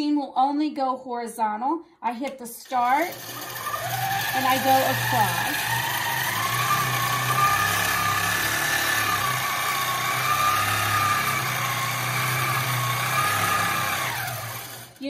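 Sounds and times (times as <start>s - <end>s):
quilting machine motor whine: 2.8s - 15.0s.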